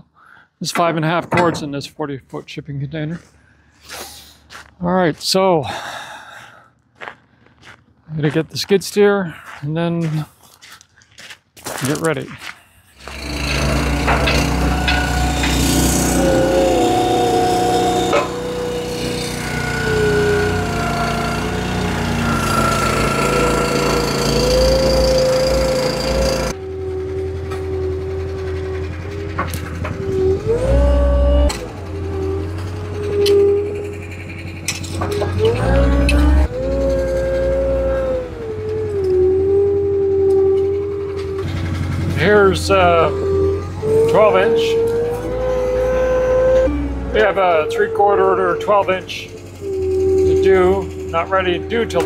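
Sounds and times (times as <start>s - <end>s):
diesel engine revving: 13.0s - 52.0s.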